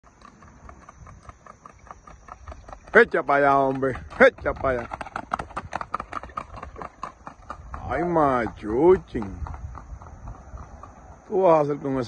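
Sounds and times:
horse hoofbeats on asphalt: 0:00.0 - 0:12.0.

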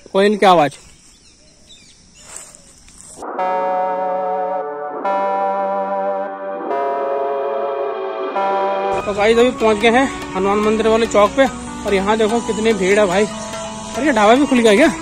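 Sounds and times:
faint outdoor ambience: 0:00.0 - 0:15.0
electronic keyboard chords: 0:03.2 - 0:15.0.

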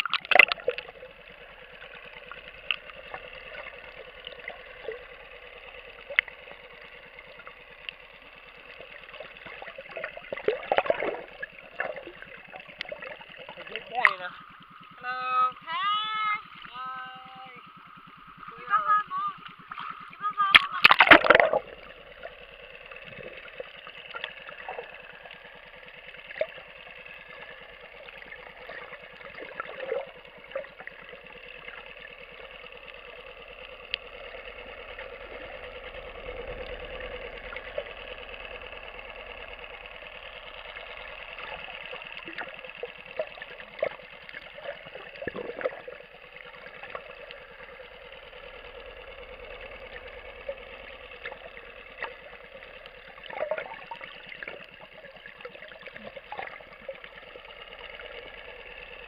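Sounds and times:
faint underwater clicks: 0:00.0 - 0:59.0
muffled boat engine underwater: 0:00.0 - 0:59.0
splash into water: 0:19.8 - 0:21.6.

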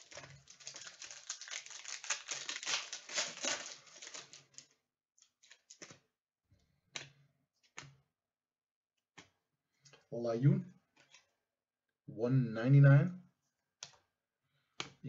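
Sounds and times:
cards clicking and snapping: 0:00.0 - 0:04.6
foil wrapper tearing and crinkling: 0:00.0 - 0:04.7.

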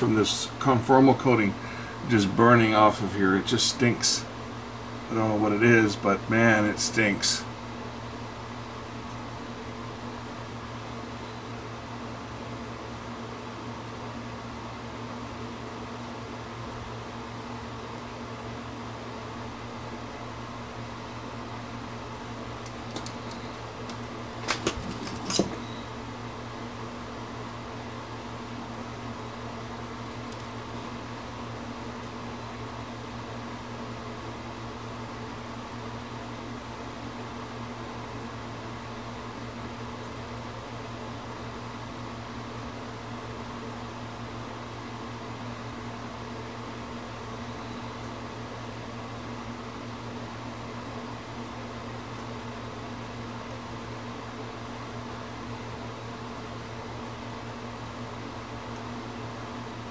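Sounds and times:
mechanical hum: 0:00.0 - 0:59.9.

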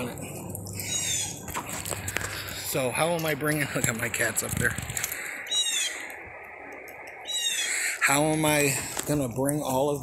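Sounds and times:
faint outdoor background noise: 0:00.0 - 0:10.0
high-pitched animal call: 0:00.8 - 0:01.4, 0:05.1 - 0:06.2, 0:07.2 - 0:08.1.

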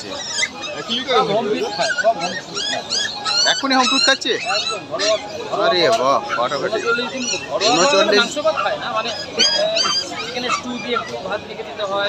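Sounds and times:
chatter of voices: 0:00.0 - 0:12.0
puppies whining: 0:00.0 - 0:12.0.

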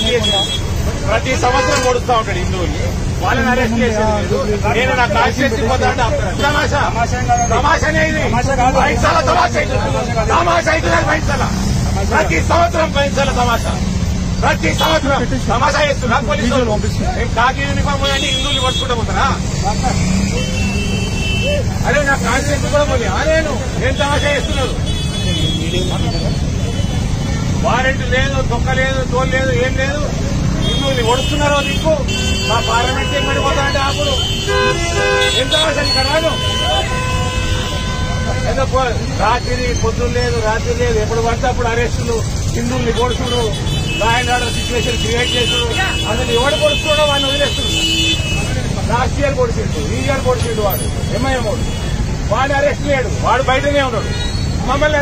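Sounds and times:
men talking: 0:00.0 - 0:55.0
men's raised voices: 0:00.0 - 0:55.0
road traffic rumble: 0:00.0 - 0:55.0.

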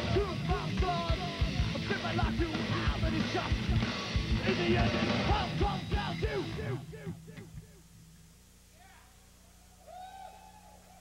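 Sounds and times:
live rock band: 0:00.0 - 0:07.2
amplifier hum: 0:00.0 - 0:11.0
drawn-out whoop: 0:09.8 - 0:11.0.

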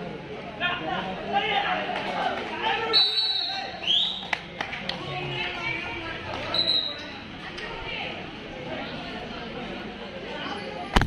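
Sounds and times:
voices and shouts: 0:00.1 - 0:10.8
referee's whistle blasts: 0:02.9 - 0:04.2, 0:06.5 - 0:07.0.

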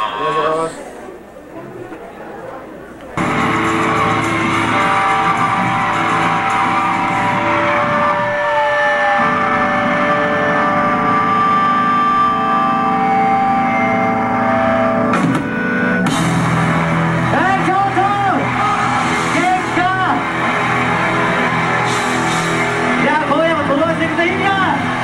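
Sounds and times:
rock music with electric guitar: 0:03.2 - 0:25.0.

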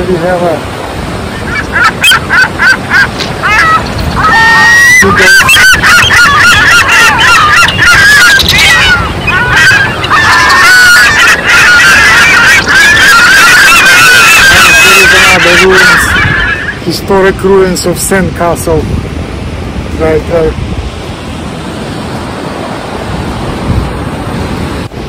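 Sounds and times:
gulls calling: 0:00.0 - 0:25.0.

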